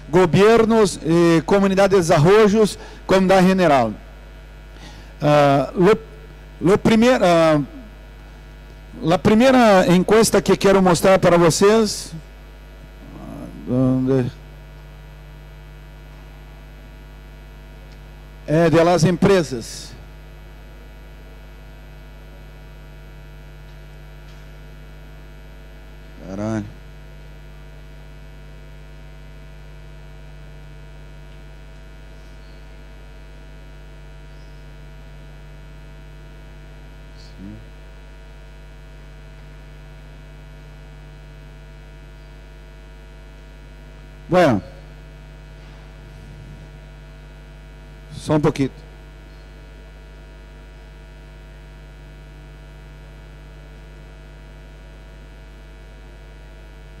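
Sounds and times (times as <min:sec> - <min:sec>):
man talking: 0:00.0 - 0:04.0, 0:05.2 - 0:07.9, 0:09.0 - 0:12.2, 0:13.0 - 0:14.4, 0:18.5 - 0:20.0, 0:26.2 - 0:26.8, 0:37.2 - 0:37.7, 0:44.3 - 0:44.9, 0:48.1 - 0:48.8
electrical mains hum: 0:00.0 - 0:57.0.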